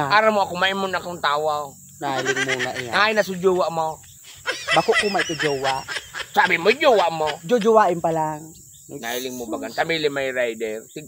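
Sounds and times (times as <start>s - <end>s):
man talking: 0.0s - 4.0s, 4.7s - 7.8s, 8.9s - 11.0s
insects chirring: 0.0s - 11.0s.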